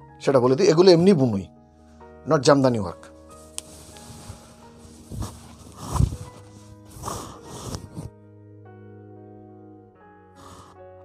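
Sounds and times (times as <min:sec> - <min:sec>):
faint background music: 0:00.0 - 0:11.0
cloth rustling and thumping: 0:03.3 - 0:08.1.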